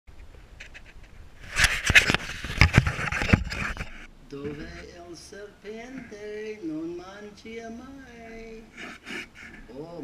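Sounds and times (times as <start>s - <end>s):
camera scraping in metal pipe: 0.6s - 4.9s, 8.7s - 9.7s.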